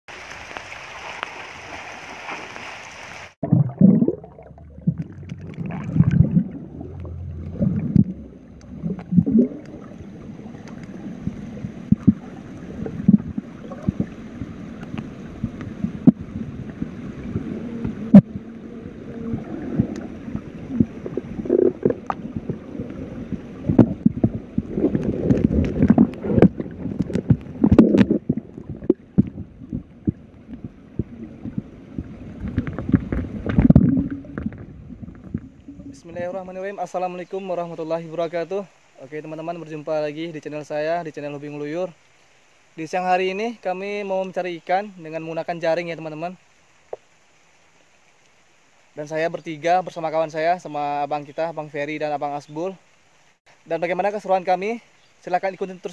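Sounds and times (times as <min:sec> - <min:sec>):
rain on a river: 0:00.1 - 0:55.9
underwater gurgling and bubbling: 0:03.4 - 0:36.3
dull underwater knocks: 0:11.8 - 0:12.2, 0:23.6 - 0:35.6.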